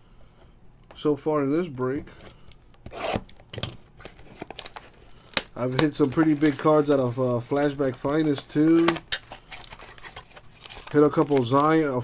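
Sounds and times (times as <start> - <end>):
foil pack crinkling: 4.0 - 12.0.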